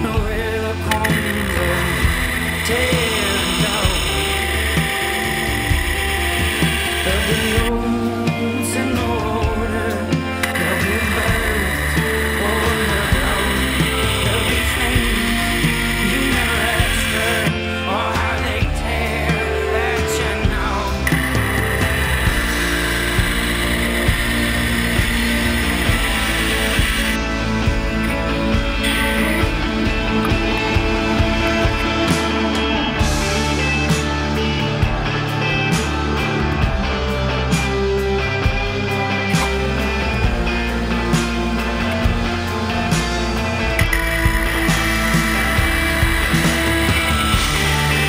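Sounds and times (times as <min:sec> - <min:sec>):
guitar: 0:00.0 - 0:48.0
person singing: 0:00.0 - 0:48.0
rock music with steady beat: 0:00.0 - 0:48.0
belt grinder hissing: 0:00.7 - 0:07.7, 0:10.2 - 0:18.3, 0:20.6 - 0:32.3, 0:42.9 - 0:48.0.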